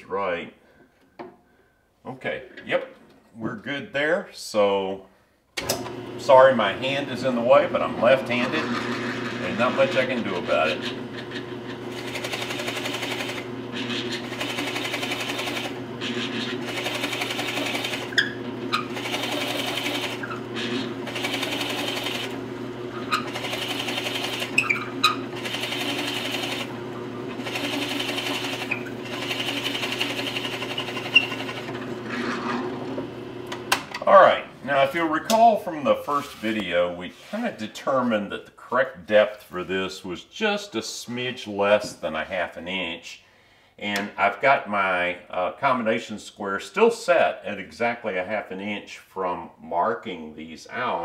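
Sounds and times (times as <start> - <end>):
drill press motor running: 6.9 - 33.8
drill bit boring into wood: 8.3 - 31.9.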